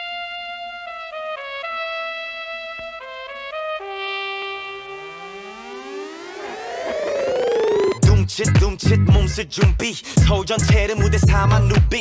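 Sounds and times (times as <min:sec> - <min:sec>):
held brass note: 0:00.0 - 0:07.0
electronic pitch sweeps: 0:02.5 - 0:08.1.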